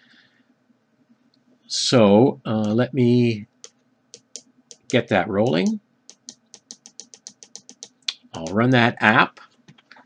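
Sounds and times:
rapid small sharp clicks: 3.6 - 5.0, 5.6 - 8.6.

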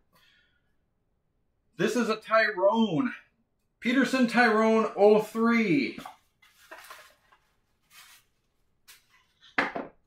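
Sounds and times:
cardboard box scuffs and rustles: 6.5 - 8.3.

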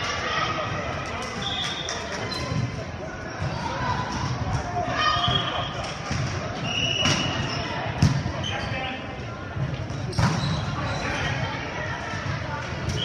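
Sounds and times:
players' voices: 0.0 - 13.0.

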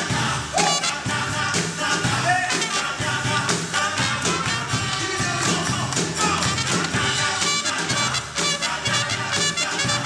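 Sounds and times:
live band playing upbeat song: 0.0 - 10.0.

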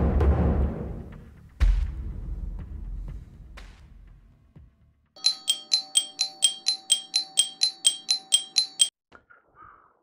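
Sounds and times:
bell-like chime struck repeatedly: 5.2 - 8.9.

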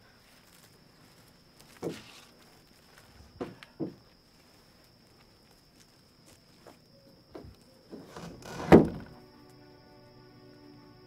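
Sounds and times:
door thudding shut: 7.3 - 9.2
soft sustained music chords: 9.0 - 11.0.

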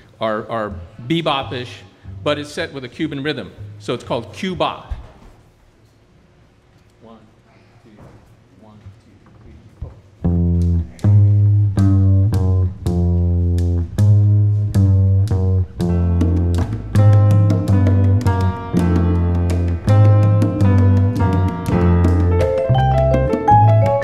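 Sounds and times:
plucked double bass: 10.2 - 24.0
pitched instruments: 10.3 - 24.0
sharp percussion strikes: 14.0 - 24.0.

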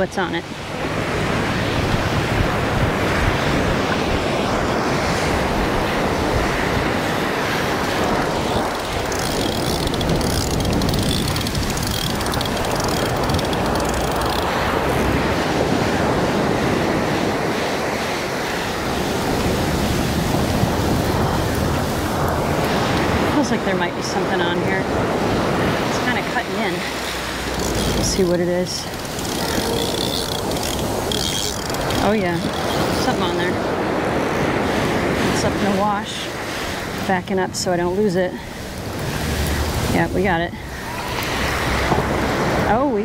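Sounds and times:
ocean surf breaking: 0.0 - 43.0
wind on microphone: 0.0 - 43.0.

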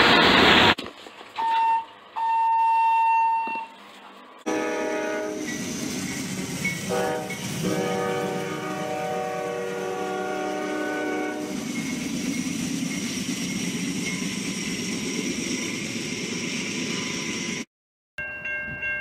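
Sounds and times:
locomotive air horn blasts: 4.5 - 5.5, 6.9 - 11.6.

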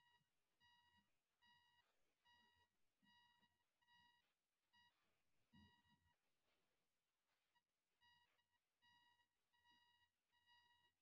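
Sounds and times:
faint electronic beeps: 0.0 - 6.2, 7.5 - 11.0.

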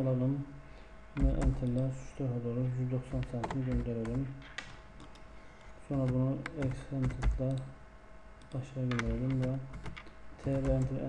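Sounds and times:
computer keyboard typing: 1.2 - 1.8, 3.2 - 5.2, 5.9 - 7.7, 8.4 - 11.0.

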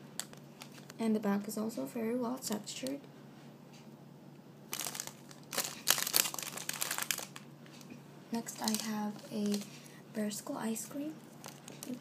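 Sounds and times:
plastic packaging crinkling: 0.2 - 1.0, 4.7 - 9.9, 10.8 - 12.0.

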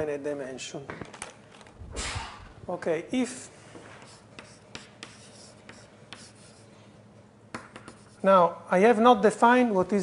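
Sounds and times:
writing on a board: 4.0 - 6.7, 7.6 - 8.2.

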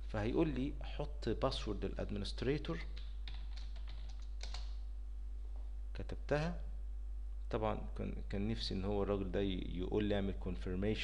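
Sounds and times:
steady low hum: 0.0 - 11.0
computer keyboard keystrokes: 2.8 - 4.8.

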